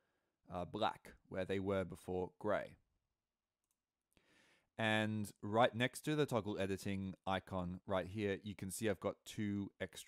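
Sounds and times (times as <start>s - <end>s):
man speaking: 0.5s - 2.8s, 4.8s - 10.0s.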